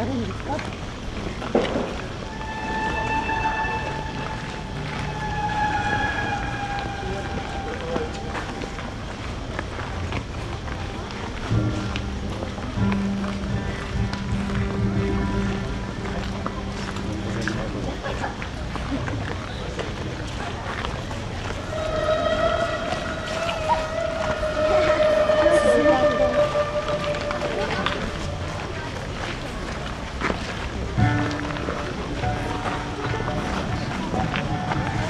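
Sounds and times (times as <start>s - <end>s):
crowd chatter: 0.0s - 35.0s
high held note: 2.2s - 8.9s, 21.6s - 29.0s
music playing: 2.2s - 9.3s, 11.0s - 18.3s, 21.4s - 29.3s, 30.5s - 35.0s.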